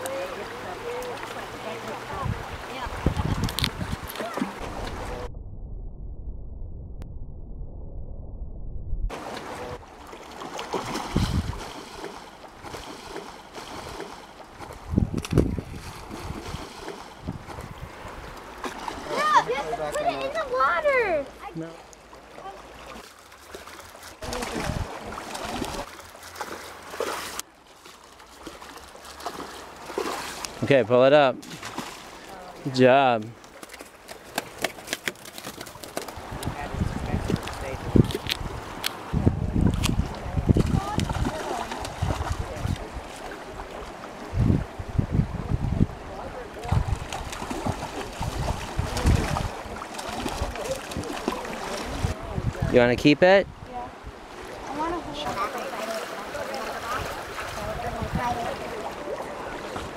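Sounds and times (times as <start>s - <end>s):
river water rushing: 0.0s - 5.0s, 17.9s - 27.5s, 53.7s - 59.9s
wind buffeting microphone: 2.1s - 7.6s, 10.9s - 11.7s, 14.5s - 18.4s, 24.3s - 25.9s, 36.2s - 55.6s, 56.9s - 58.9s
fish thrashing water splashing: 9.2s - 19.5s, 22.8s - 30.6s, 31.4s - 32.4s, 39.8s - 43.8s, 46.6s - 52.2s.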